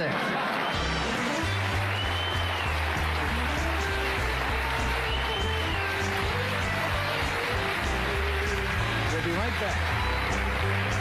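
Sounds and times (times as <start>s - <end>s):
audience applause: 0.0s - 11.0s
band playing lively music: 0.7s - 11.0s.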